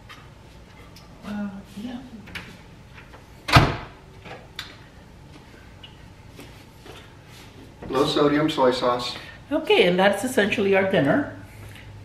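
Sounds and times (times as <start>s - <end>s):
microwave door shutting: 3.5s - 4.0s.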